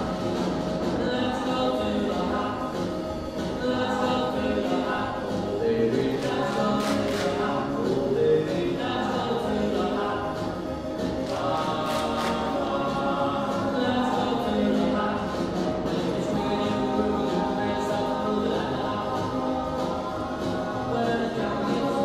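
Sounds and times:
school choir singing: 0.0s - 22.0s.

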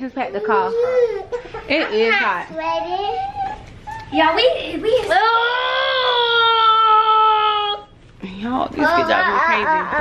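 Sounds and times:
child wailing: 5.0s - 7.9s, 8.9s - 10.0s.

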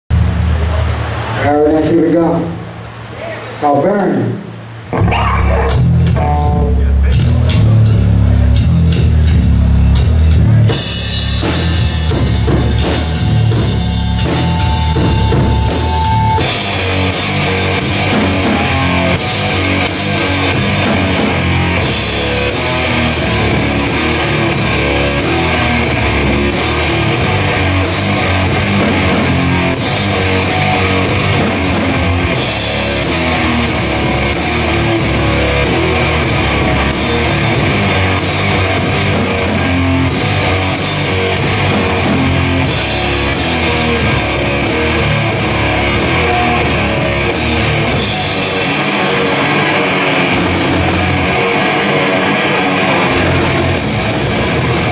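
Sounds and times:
metal band playing: 0.1s - 54.9s
guitar feedback tone: 4.4s - 54.9s
cymbal crashes: 11.0s - 20.8s.

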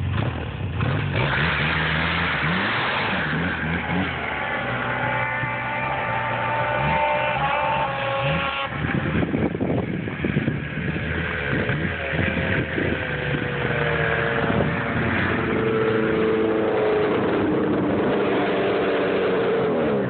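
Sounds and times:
snowmobile engine revving: 0.8s - 20.0s.

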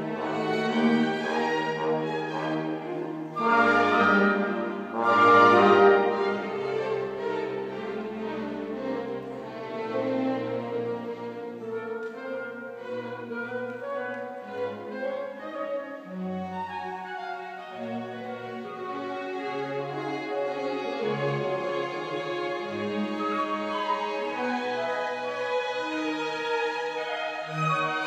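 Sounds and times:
small orchestra playing classical music: 0.0s - 28.0s.

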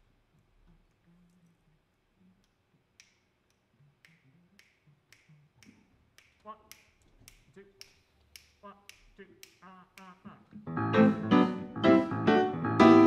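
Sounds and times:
person counting off: 0.7s - 10.6s
fingers snapping: 2.4s - 10.2s.

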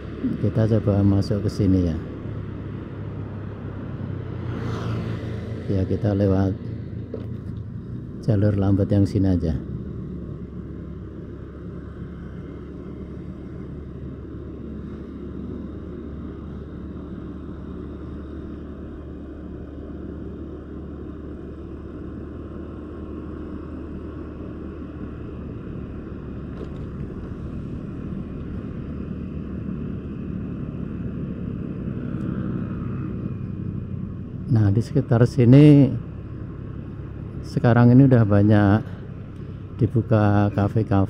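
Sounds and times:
vehicle engine hum and road noise: 0.0s - 41.0s.

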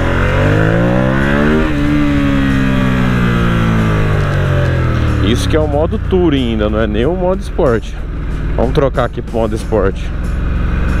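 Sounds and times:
motorcycle engine accelerating and slowing: 0.0s - 11.0s.

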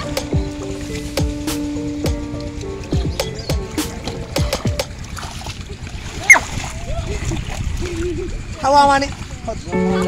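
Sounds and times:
splashing in muddy water: 2.4s - 10.0s
faint voices: 5.6s - 10.0s.

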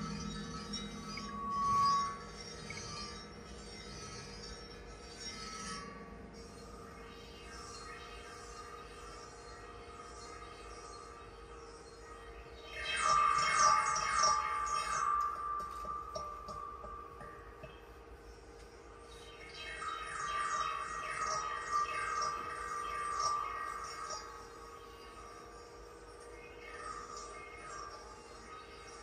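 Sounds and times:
ringing stone tone: 0.0s - 29.0s.

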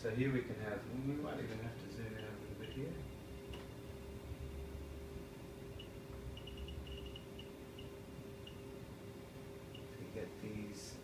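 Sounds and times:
faint steady hum: 0.0s - 11.0s
high-pitched electronic beeps: 5.7s - 8.6s.

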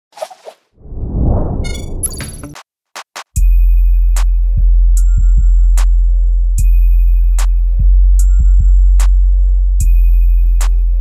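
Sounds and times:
loud low whoosh: 0.8s - 2.4s.

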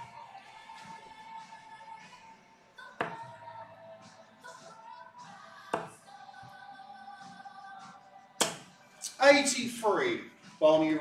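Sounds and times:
background music: 0.0s - 11.0s
darts striking dartboard: 3.0s - 3.3s, 5.7s - 6.0s, 8.4s - 8.7s.

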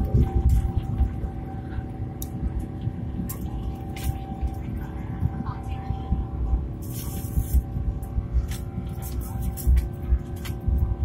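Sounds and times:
aircraft cabin rumble: 0.0s - 11.0s.

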